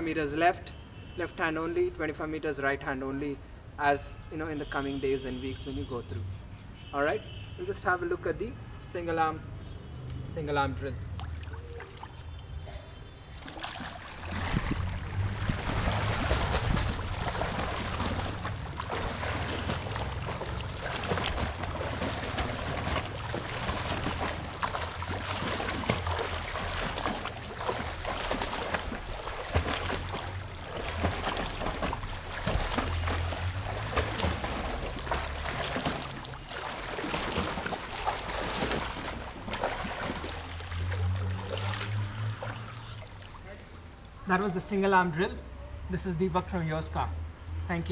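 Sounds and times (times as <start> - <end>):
swimmer splashing in a pool: 11.1 - 12.7, 13.3 - 43.6.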